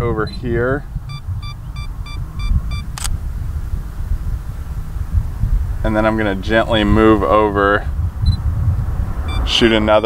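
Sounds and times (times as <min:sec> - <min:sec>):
wind rumble on microphone: 0:00.0 - 0:10.0
camera self-timer beeping: 0:01.1 - 0:03.1
camera shutter click: 0:02.9 - 0:03.2.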